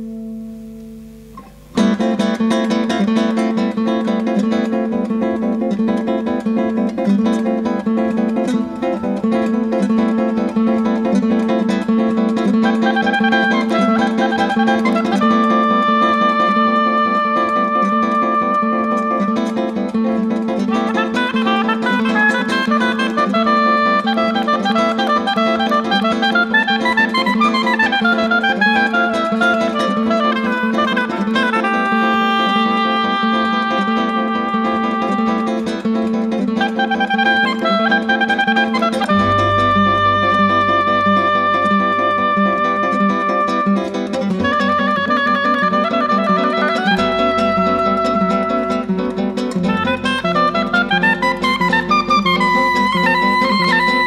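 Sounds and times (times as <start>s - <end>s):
acoustic guitar strumming: 0.0s - 54.0s
guitar melody line: 0.0s - 54.0s.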